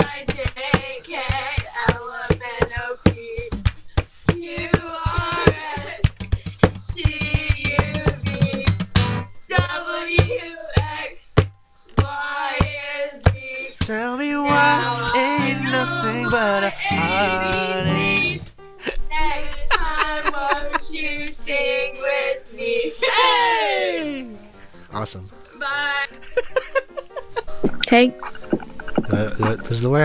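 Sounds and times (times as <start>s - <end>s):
strummed acoustic guitar: 4.6s - 9.4s, 13.8s - 18.5s
person singing: 12.0s - 20.6s.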